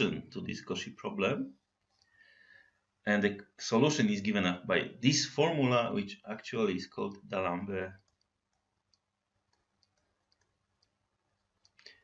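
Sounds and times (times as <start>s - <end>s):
stylus tapping tablet screen: 7.0s - 12.0s.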